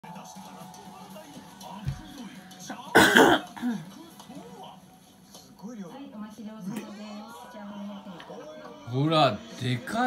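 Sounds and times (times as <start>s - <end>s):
faint television audio: 0.0s - 10.0s
person coughing: 2.9s - 3.8s.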